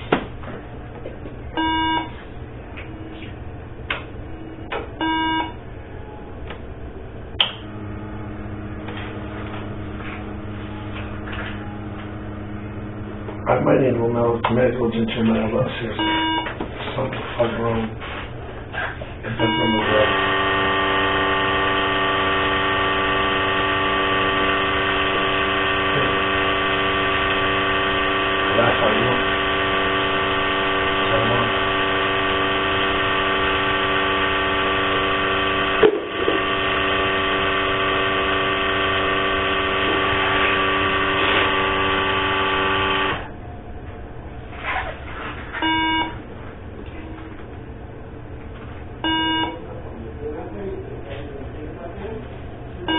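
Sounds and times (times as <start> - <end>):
electronic buzzing tone: 1.5 - 3.4, 4.2 - 5.7, 7.3 - 16.7, 19.2 - 43.6, 45.5 - 46.3, 49.0 - 49.6
short beeps: 1.6 - 2.2, 5.0 - 5.6, 16.0 - 16.5, 19.4 - 20.1, 45.6 - 46.2, 49.0 - 49.6.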